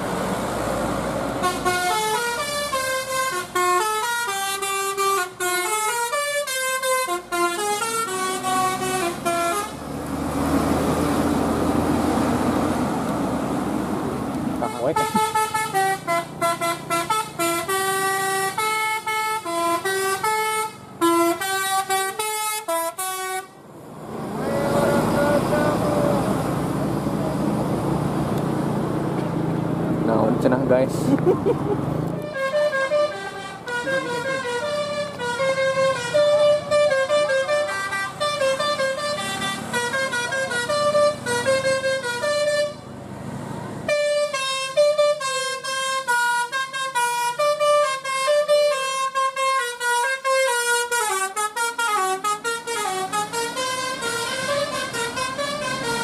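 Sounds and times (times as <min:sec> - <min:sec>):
bus engine running: 0:00.0 - 0:56.0
road noise: 0:00.0 - 0:56.0
bus musical horn tune: 0:01.4 - 0:09.8, 0:14.6 - 0:23.6, 0:32.2 - 0:42.9, 0:43.9 - 0:56.0.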